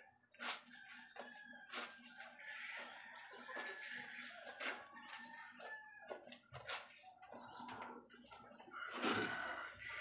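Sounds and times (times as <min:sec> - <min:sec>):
clothes squelching in soapy water: 0:00.3 - 0:03.0.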